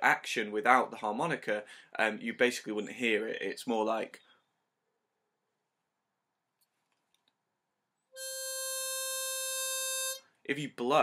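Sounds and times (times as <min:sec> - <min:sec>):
harmonica held note: 0:08.1 - 0:10.3.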